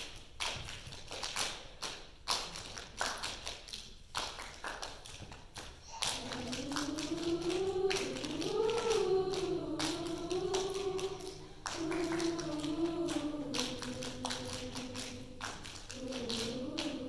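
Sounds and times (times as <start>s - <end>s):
choir hand claps: 0.0s - 17.0s
choir singing: 5.9s - 17.0s.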